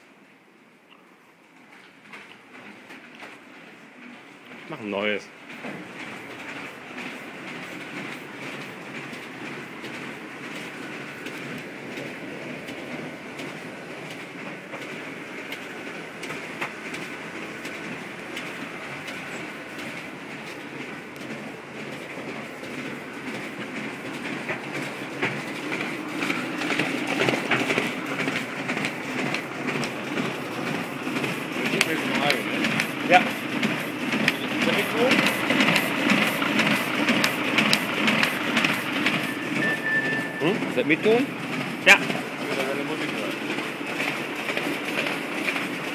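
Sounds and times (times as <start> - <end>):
printing machine clattering: 1.5 - 45.9.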